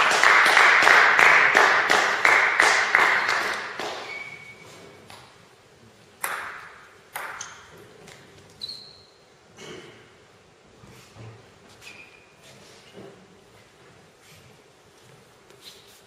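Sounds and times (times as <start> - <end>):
spectators applauding: 0.0 - 4.2
table tennis ball bouncing: 6.2 - 7.7.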